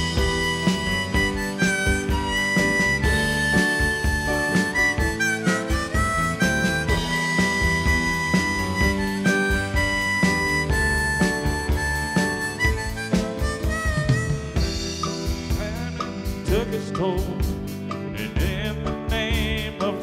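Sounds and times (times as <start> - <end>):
harmonica solo: 0.0 - 17.3
drums: 0.0 - 20.0
electric guitar: 0.0 - 20.0.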